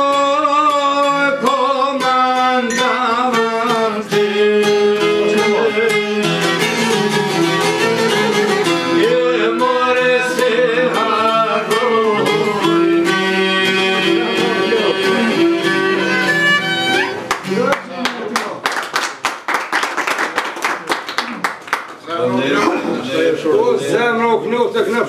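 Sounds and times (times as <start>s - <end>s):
man singing: 0.0s - 7.2s, 8.7s - 15.6s
plucked lute: 0.0s - 17.4s
violin: 5.0s - 17.4s.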